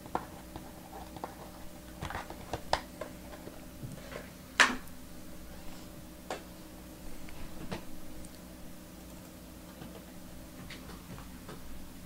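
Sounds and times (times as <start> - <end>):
faint clicks and taps: 0.0 - 5.0, 9.1 - 11.8
steady low hum: 0.0 - 12.0.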